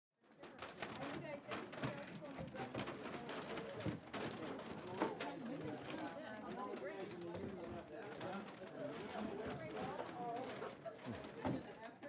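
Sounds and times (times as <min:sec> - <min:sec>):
cans and paper bags clattering: 0:00.3 - 0:12.0.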